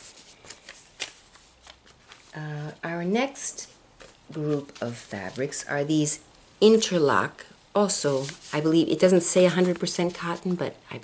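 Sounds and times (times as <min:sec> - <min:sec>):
fabric and paper rustling: 0:00.0 - 0:02.9, 0:03.5 - 0:05.8, 0:08.0 - 0:10.7.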